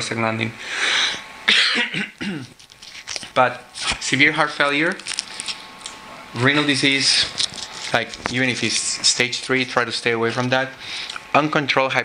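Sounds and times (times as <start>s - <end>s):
person coughing: 1.5s - 2.6s.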